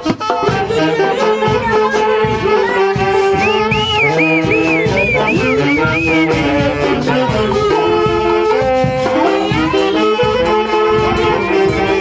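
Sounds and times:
saxophones and clarinets: 0.0s - 12.0s.

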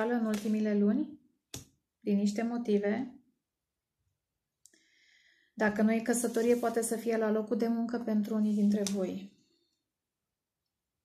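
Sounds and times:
woman speaking: 0.0s - 1.2s, 2.0s - 3.2s, 5.6s - 9.3s
faint in-breath: 4.7s - 5.6s.

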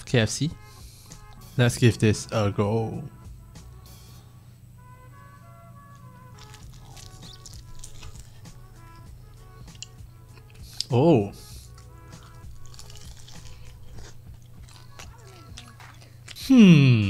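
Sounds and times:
soft background music: 0.0s - 17.0s
crunchy bites of fried food: 6.2s - 11.0s, 11.6s - 16.5s.

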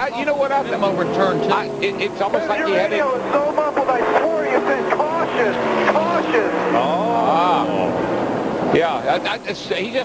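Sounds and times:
commentators talking: 0.0s - 10.0s
race car engine droning: 0.0s - 10.0s.

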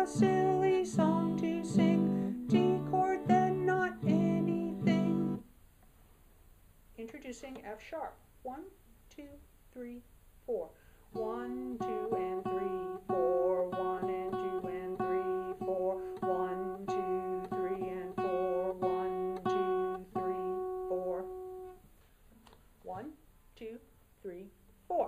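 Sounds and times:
woman singing: 0.0s - 5.4s, 11.1s - 21.6s
acoustic guitar plucked notes: 0.0s - 5.5s, 11.1s - 21.8s.

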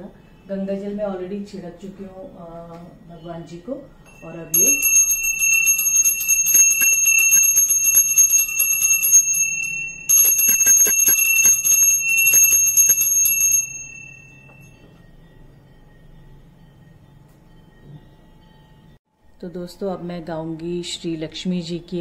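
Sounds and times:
small brass hand bell ringing: 4.1s - 18.8s.

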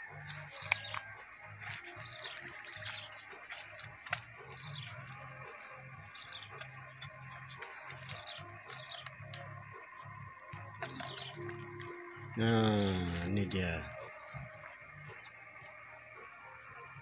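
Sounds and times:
faint bird chirps: 0.0s - 17.0s
insect drone: 0.0s - 17.0s
soft background music: 0.0s - 17.0s
wooden hive box clicks: 0.2s - 9.5s.

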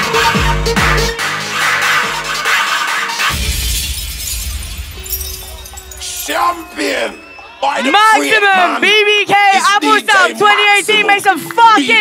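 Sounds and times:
glass shatter crash effect: 3.3s - 7.1s.

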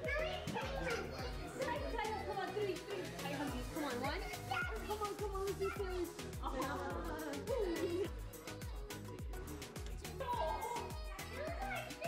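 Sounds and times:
background music with deep beat: 0.0s - 12.0s
young children chattering: 0.0s - 12.0s.

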